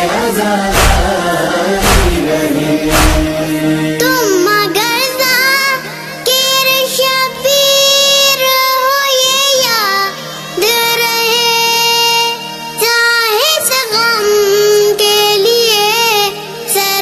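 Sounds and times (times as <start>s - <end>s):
low held drone tone: 0.7s - 3.7s.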